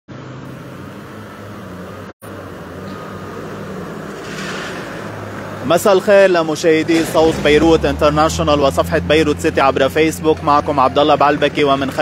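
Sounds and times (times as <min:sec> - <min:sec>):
vehicle engines humming: 0:00.1 - 0:12.0.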